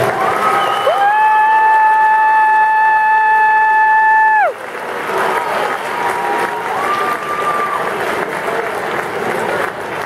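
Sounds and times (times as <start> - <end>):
crowd applauding: 0.0 - 10.0.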